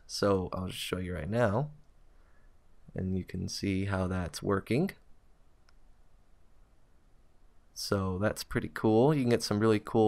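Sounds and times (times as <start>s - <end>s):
low steady hum: 0.0s - 10.0s
faint click: 1.8s - 2.0s, 5.6s - 5.9s.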